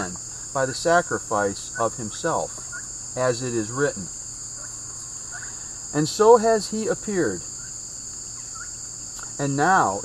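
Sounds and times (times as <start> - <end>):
insects buzzing: 0.0 - 10.0.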